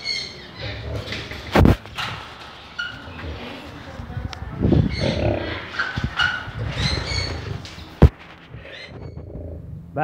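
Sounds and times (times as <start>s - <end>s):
tigers growling and snarling: 0.5s - 1.5s, 4.7s - 7.8s.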